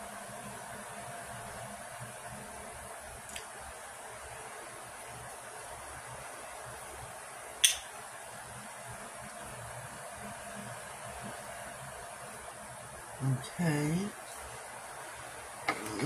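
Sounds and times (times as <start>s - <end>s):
low room hiss: 0.0s - 16.0s.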